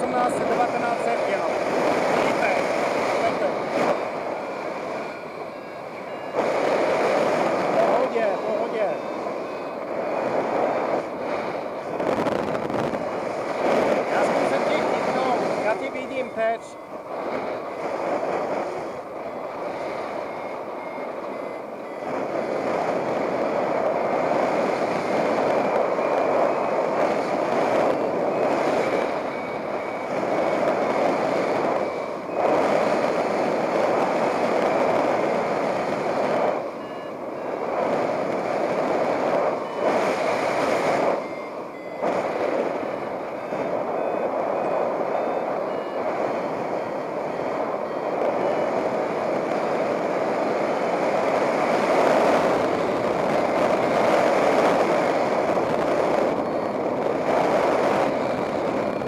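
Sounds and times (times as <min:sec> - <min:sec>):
variometer short beeps: 0:00.0 - 0:59.0
wind rushing over microphone: 0:00.0 - 0:59.0.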